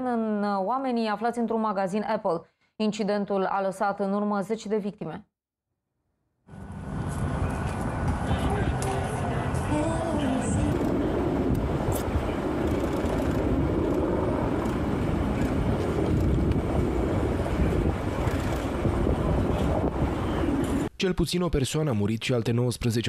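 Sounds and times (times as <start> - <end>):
steady low rumble: 6.5 - 20.9.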